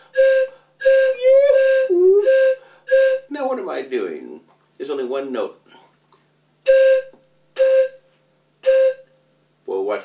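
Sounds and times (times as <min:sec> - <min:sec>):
one-note whistle blowing: 0:00.0 - 0:03.3, 0:06.6 - 0:09.2.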